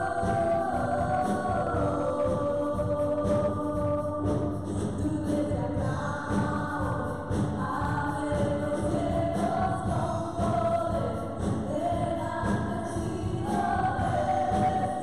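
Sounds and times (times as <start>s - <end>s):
drums: 0.0s - 15.0s
keyboard: 0.0s - 15.0s
women singing gospel song: 0.0s - 15.0s.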